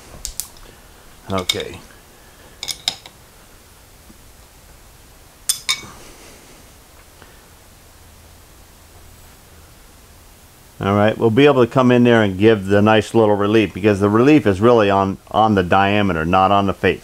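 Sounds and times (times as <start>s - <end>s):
wrench clinking against metal: 1.3s - 1.8s, 2.6s - 3.1s, 5.5s - 5.9s.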